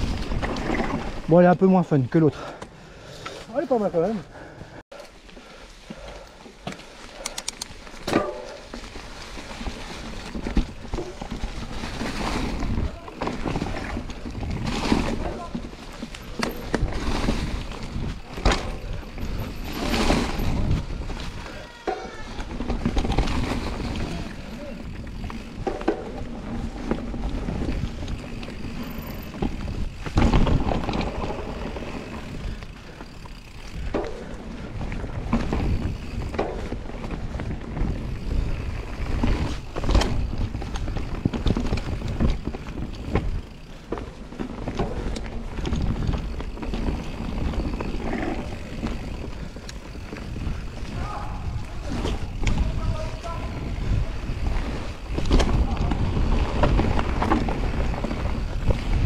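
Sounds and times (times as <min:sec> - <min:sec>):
bike tyres rumbling on dirt: 0:00.0 - 0:59.0
bike clattering over bumps: 0:07.8 - 0:59.0
wind on microphone: 0:47.6 - 0:59.0.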